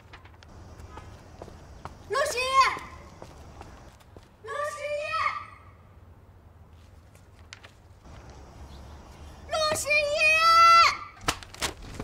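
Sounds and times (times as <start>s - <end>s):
faint footsteps: 0.0s - 4.4s
young woman shouting: 2.1s - 3.0s, 4.4s - 5.8s, 9.5s - 11.2s.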